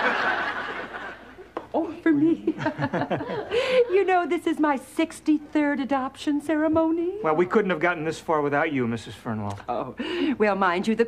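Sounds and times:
studio audience laughter: 0.0s - 1.5s, 2.6s - 4.1s.

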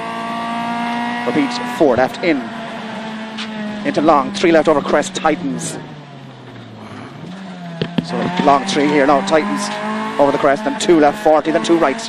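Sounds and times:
car engine revving: 0.0s - 12.0s
sharp knocks: 7.7s - 8.4s.

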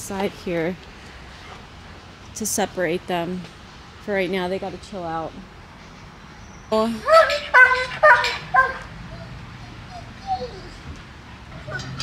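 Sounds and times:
dog barking: 7.1s - 8.9s.

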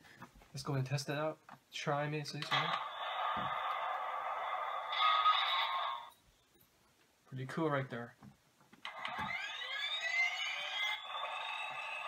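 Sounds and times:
toy tank battle sound effect: 2.5s - 6.1s, 8.9s - 12.0s.

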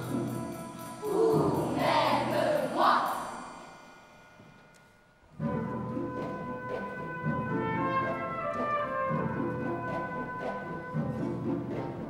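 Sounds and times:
orchestra playing: 0.0s - 3.6s, 5.4s - 12.0s
children's choir singing: 0.0s - 3.9s.

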